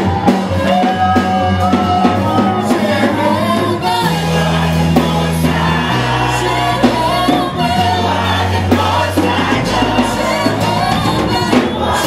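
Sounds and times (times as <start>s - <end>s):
band playing: 0.0s - 12.0s
gospel singers: 0.0s - 12.0s
sustained bass line: 0.0s - 12.0s.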